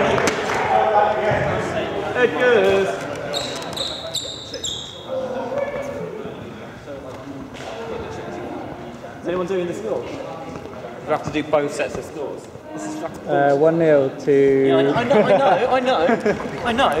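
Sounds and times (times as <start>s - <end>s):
voices echoing in a hall: 0.0s - 17.0s
high-pitched squeaks: 3.3s - 5.2s.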